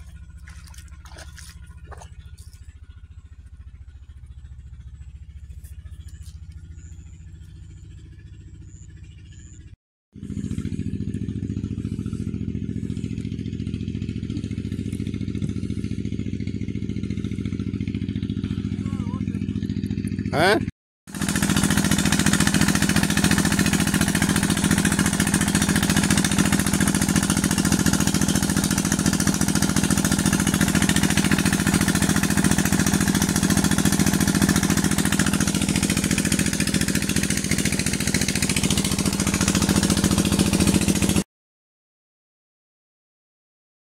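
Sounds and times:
water gushing into basin: 0:00.0 - 0:02.2
pump engine thudding: 0:00.0 - 0:04.0, 0:21.1 - 0:41.2.

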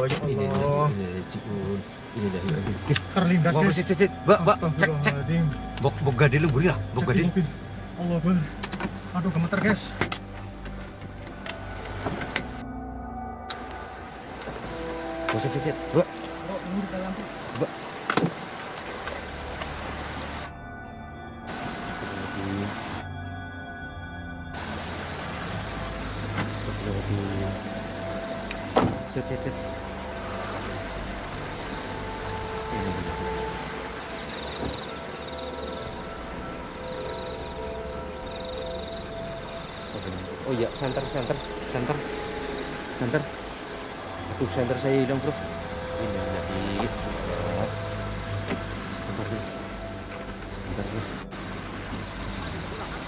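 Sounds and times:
car engine humming: 0:00.0 - 0:53.0.

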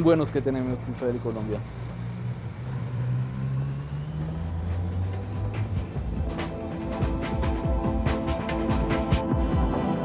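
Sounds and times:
low droning soundtrack tones: 0:00.0 - 0:10.0.

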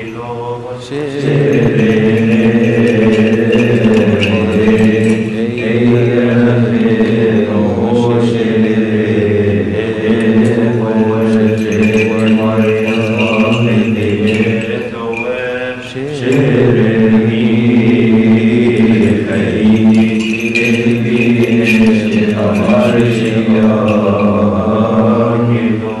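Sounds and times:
voices chanting a hymn: 0:00.0 - 0:26.0.

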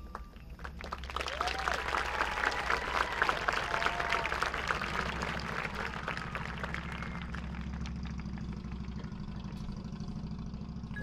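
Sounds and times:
low mechanical hum: 0:00.0 - 0:11.0
crowd applause: 0:00.2 - 0:09.6.

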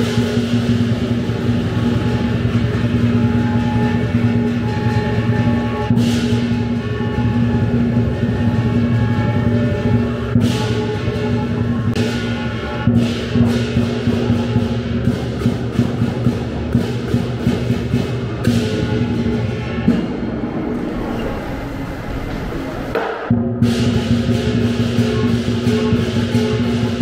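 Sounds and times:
big drum beating: 0:00.0 - 0:27.0
crashing cymbals: 0:00.0 - 0:27.0.

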